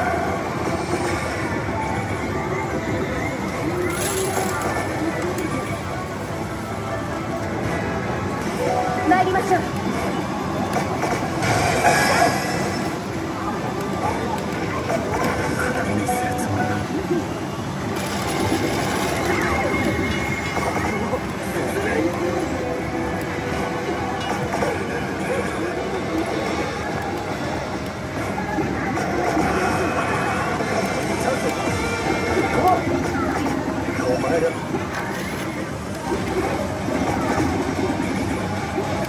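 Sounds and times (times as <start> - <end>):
dense steady machine noise: 0.0 - 39.0.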